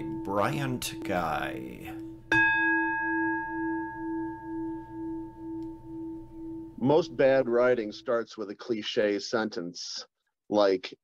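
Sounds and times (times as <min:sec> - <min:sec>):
singing bowl ringing: 0:00.0 - 0:08.0.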